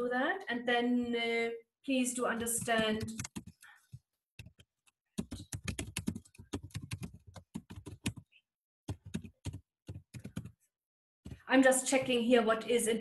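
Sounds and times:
computer keyboard typing: 2.4s - 10.6s.

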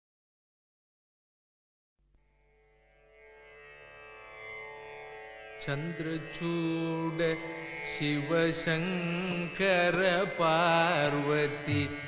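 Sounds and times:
tanpura drone: 2.2s - 12.0s
man singing long wavering notes: 5.6s - 12.0s.

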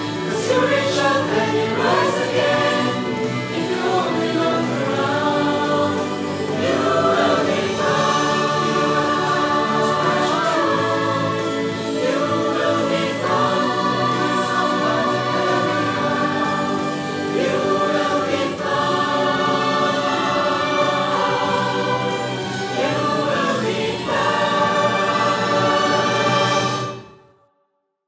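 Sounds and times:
instrumental accompaniment: 0.0s - 27.3s
choir singing held chords: 0.0s - 27.4s.

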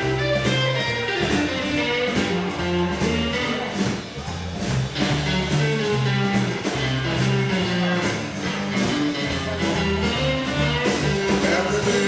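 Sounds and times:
drum kit: 0.0s - 12.0s
electric guitars: 0.0s - 12.0s
stepping bass line: 0.0s - 12.0s.

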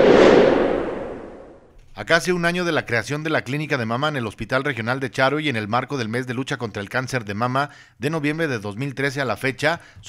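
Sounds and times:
whoosh: 0.0s - 1.7s.

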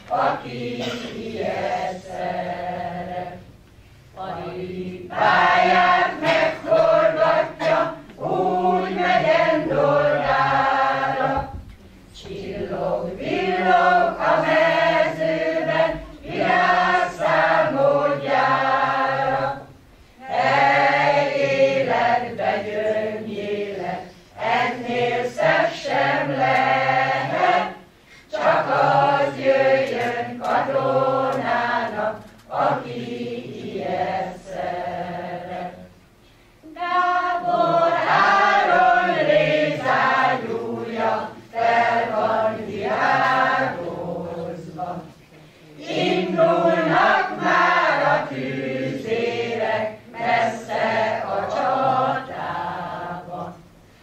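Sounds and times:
mixed choir singing unaccompanied: 0.0s - 54.0s.

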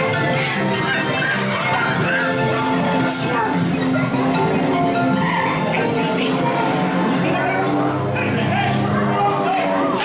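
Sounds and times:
music over speakers: 0.0s - 9.1s.

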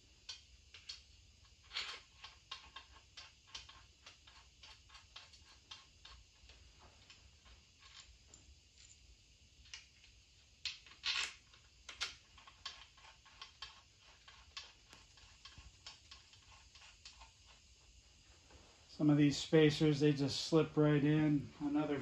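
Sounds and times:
small metal clicks and taps: 0.2s - 1.0s.

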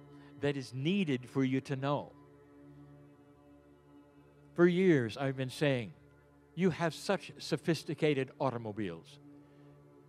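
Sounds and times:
faint droning music: 0.0s - 10.0s.

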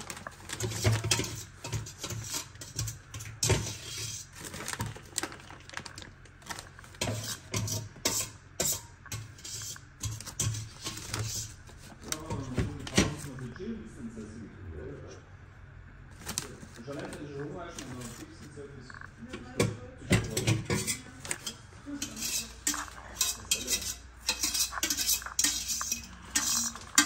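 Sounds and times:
plastic bag crinkling: 0.0s - 1.7s, 4.2s - 7.0s, 16.1s - 19.1s.

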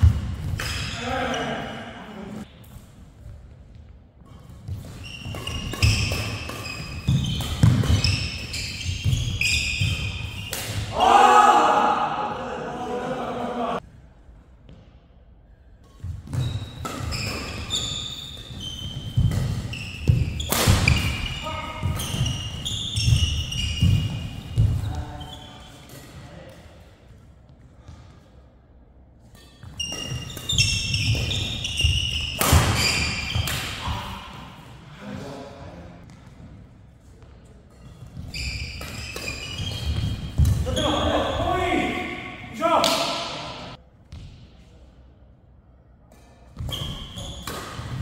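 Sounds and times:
shoes squeaking on court: 3.2s - 10.8s, 16.0s - 26.2s, 29.3s - 34.1s, 36.0s - 42.1s, 46.2s - 48.0s
rackets hitting shuttlecock: 4.2s - 11.0s, 15.9s - 24.9s, 29.4s - 34.2s, 37.2s - 41.3s, 46.1s - 48.0s.

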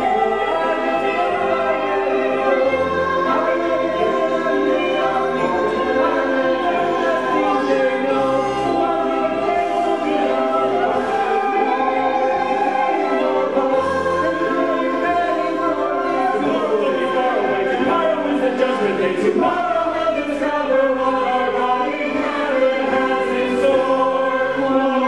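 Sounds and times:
cast singing together: 0.0s - 25.0s.

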